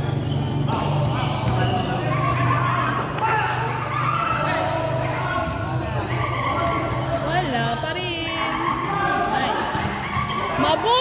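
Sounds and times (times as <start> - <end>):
players calling out: 0.0 - 11.0
basketball bouncing on court: 0.1 - 2.3.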